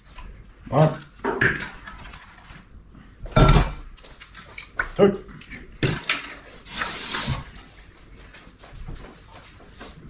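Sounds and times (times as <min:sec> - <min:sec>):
kitchen handling sounds: 0:00.7 - 0:02.6, 0:03.2 - 0:07.6.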